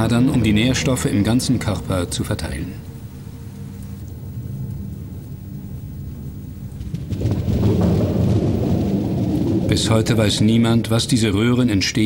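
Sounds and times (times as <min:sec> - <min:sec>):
thunder-like rumble: 0:04.1 - 0:11.2.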